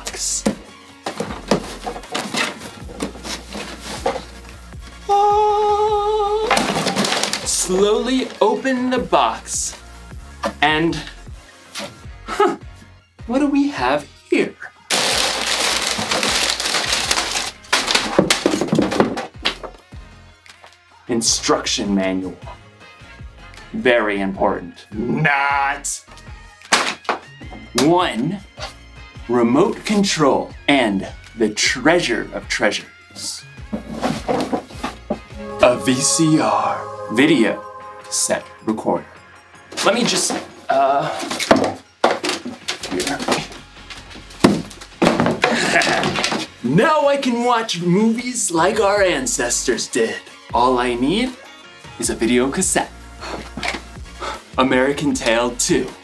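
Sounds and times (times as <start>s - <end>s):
cardboard box handling noise: 0.5s - 4.5s, 14.9s - 19.2s, 33.7s - 35.2s
packing paper rustling and crackling: 1.1s - 4.5s, 6.5s - 8.5s, 14.9s - 19.2s.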